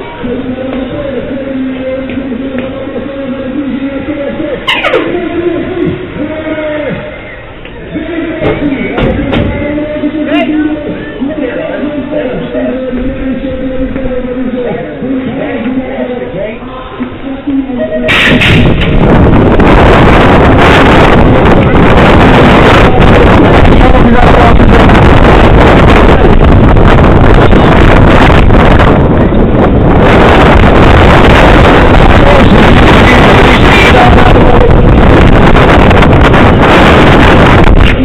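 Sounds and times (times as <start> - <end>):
wind noise on microphone: 0.0 - 38.0.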